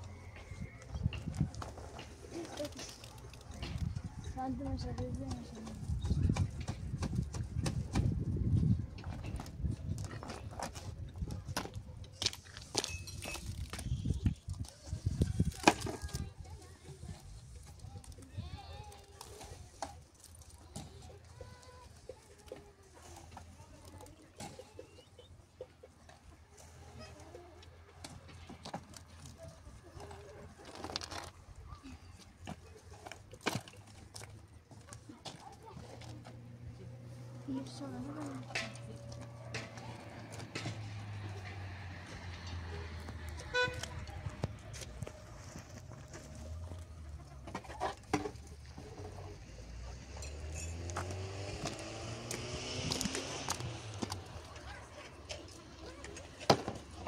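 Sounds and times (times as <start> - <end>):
concrete blocks knocking and scraping: 0.0 - 18.2, 38.0 - 57.0
faint voices: 13.4 - 57.0.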